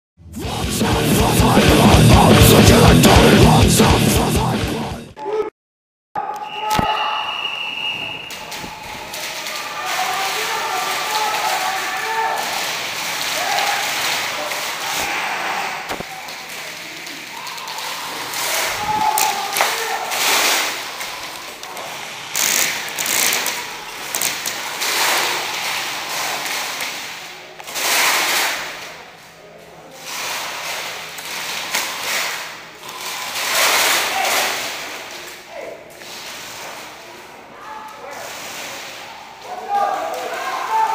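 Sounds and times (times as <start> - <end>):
people's voices: 0.4 - 5.5, 6.2 - 27.4.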